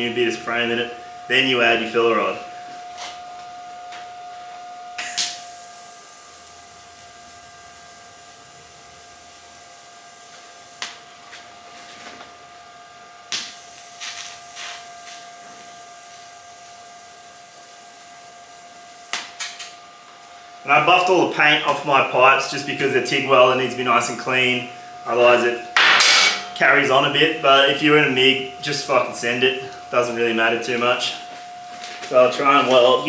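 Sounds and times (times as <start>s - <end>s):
welding arc hissing: 5.0s - 11.0s, 13.3s - 19.7s.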